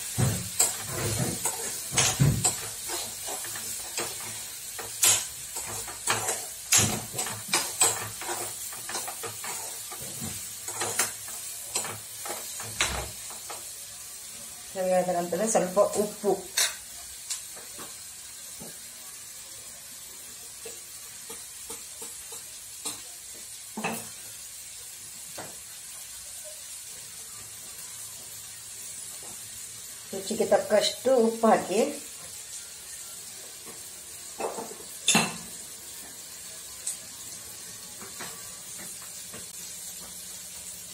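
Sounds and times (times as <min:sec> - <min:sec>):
vegetables sizzling: 0:00.0 - 0:40.9
metal spoon scraping a pan: 0:00.2 - 0:13.7, 0:15.8 - 0:16.9.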